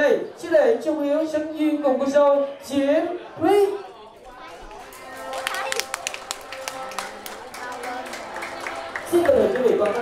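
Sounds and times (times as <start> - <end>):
voices of guests: 0.0 - 10.0
people clapping: 4.2 - 10.0
music with held notes: 4.8 - 10.0.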